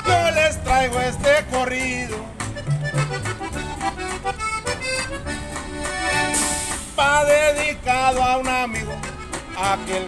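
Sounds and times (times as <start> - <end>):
accordion melody: 0.0 - 10.0
rhythmic bass line: 0.0 - 10.0.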